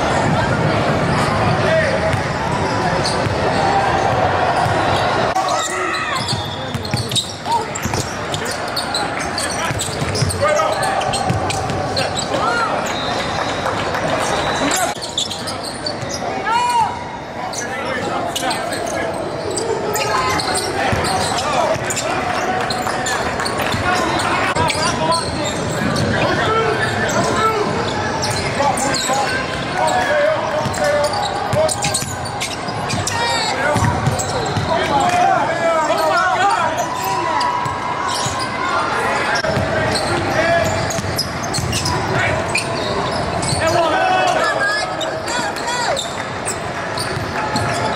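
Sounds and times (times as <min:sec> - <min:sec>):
voices calling out: 0:00.0 - 0:47.9.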